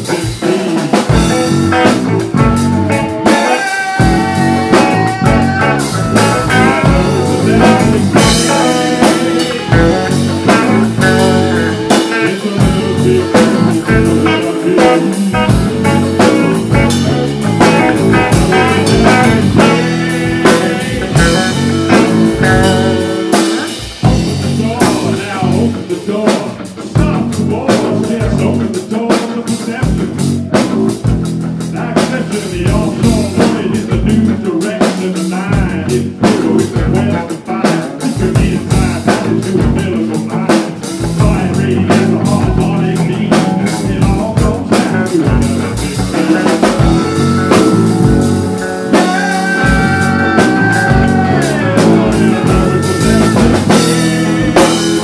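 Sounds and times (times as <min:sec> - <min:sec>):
drum kit steady beat: 0:00.0 - 0:55.0
electric guitars: 0:00.0 - 0:55.0.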